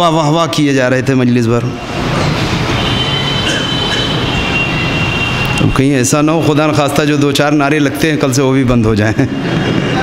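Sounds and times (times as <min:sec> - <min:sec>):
crowd noise: 0:00.0 - 0:10.0.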